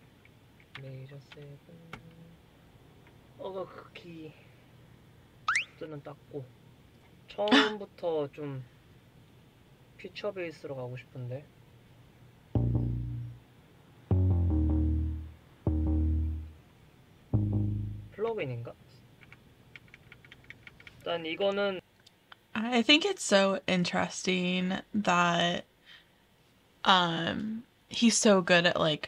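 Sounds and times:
sharp rising sound: 5.5 - 5.8
plucked synth chord over bass: 12.6 - 13.4, 14.1 - 16.6, 17.4 - 18.2.

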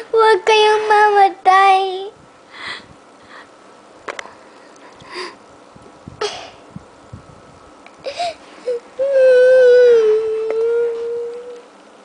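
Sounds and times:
breathy intake of breath: 2.5 - 3.5, 5.0 - 5.4
girl crying: 8.1 - 11.6.

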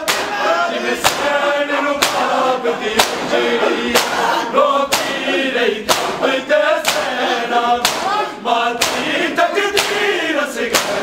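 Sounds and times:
men chanting in chorus: 0.0 - 11.0
men slapping chests in unison: 0.0 - 11.0.

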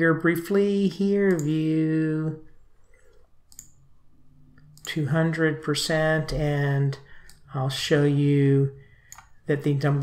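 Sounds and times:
person speaking: 0.0 - 10.0
mouse click: 3.0 - 3.8.

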